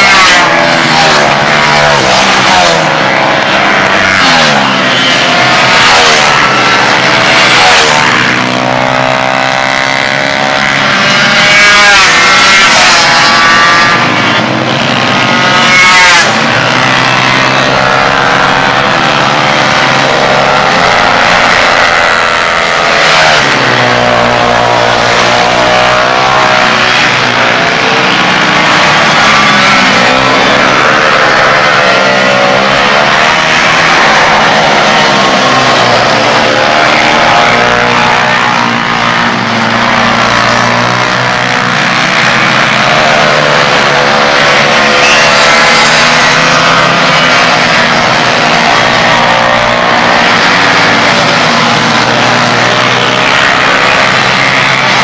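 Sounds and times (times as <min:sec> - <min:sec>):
minibike engines revving: 0:00.0 - 0:55.0.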